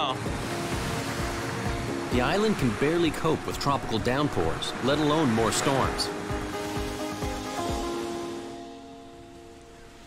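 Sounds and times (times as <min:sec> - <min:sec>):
sea surf breaking: 0:00.0 - 0:10.0
soft background music: 0:00.0 - 0:10.0.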